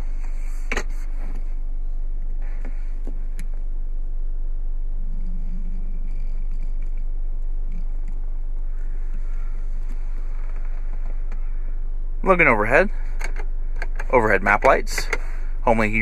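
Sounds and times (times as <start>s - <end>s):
low hum in car cabin: 0.0s - 16.0s.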